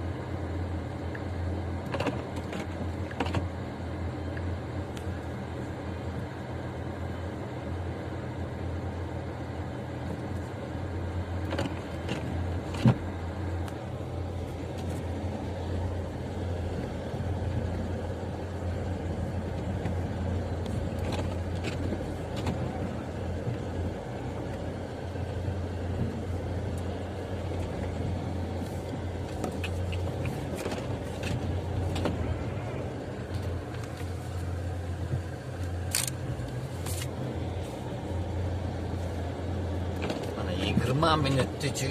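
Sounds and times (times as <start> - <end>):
car engine and tyres hum: 0.0 - 41.9.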